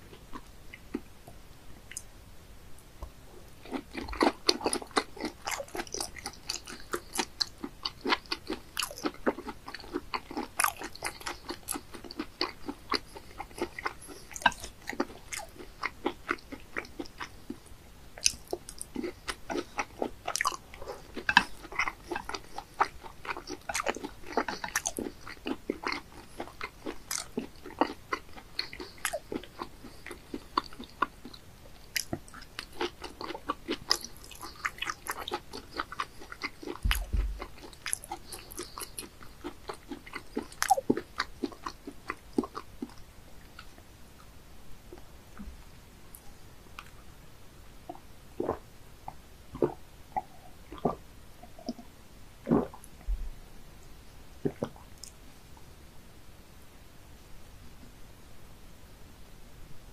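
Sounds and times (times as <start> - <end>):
person chewing crunchy food: 3.4 - 43.8, 47.9 - 48.6, 49.6 - 51.8.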